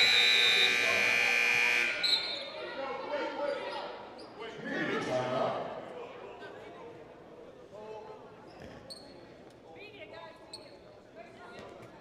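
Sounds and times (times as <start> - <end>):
scoreboard horn blast: 0.0 - 2.0
voices in echoing gym: 0.0 - 12.0.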